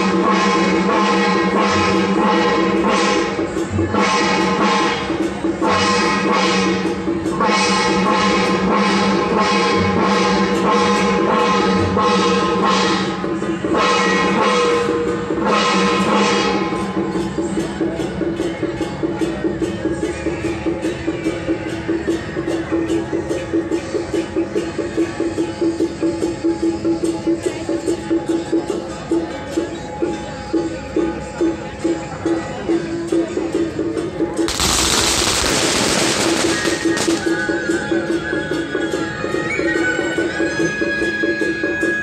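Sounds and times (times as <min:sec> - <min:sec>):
band music: 0:34.5 - 0:38.3.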